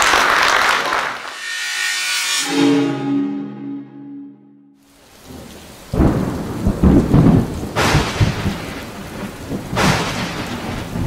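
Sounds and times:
audience applauding: 0.0s - 1.4s.

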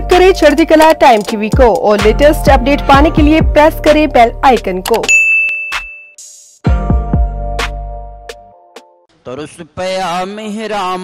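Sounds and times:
loud music: 1.6s - 4.2s, 6.2s - 8.5s
bright bell chime: 5.1s - 6.2s.

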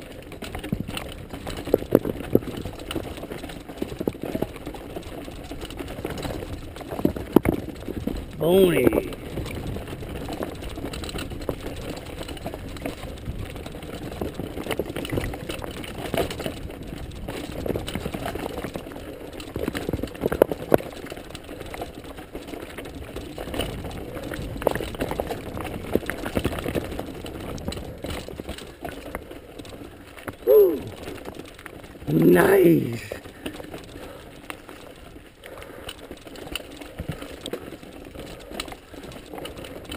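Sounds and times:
bike clattering over stones: 0.0s - 39.9s
bike tyre and drivetrain rattle: 0.0s - 39.9s.

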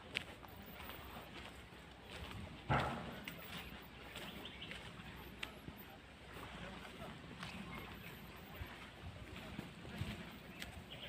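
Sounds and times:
footsteps on grassy path: 0.0s - 11.0s
loud thump: 2.7s - 3.3s.

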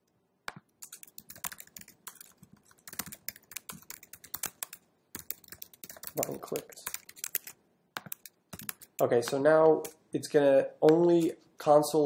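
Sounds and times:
computer keyboard typing: 0.6s - 10.0s.

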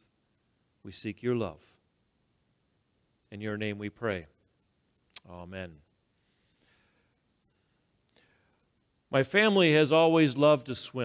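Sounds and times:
faint breath: 6.2s - 8.7s.

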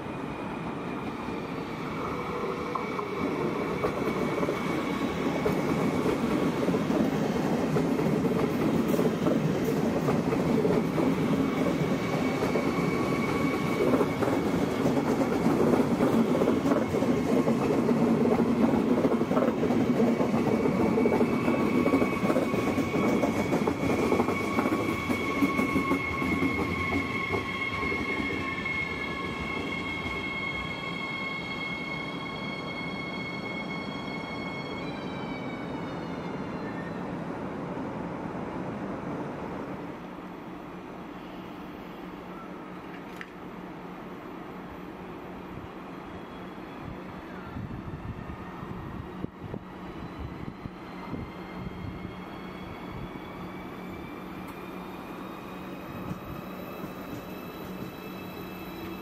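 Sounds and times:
train rolling past: 0.0s - 59.0s.

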